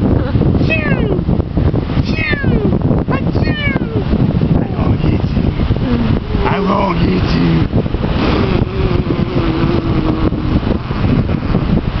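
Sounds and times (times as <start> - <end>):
ocean surf: 0.0 - 12.0
wind buffeting microphone: 0.0 - 12.0.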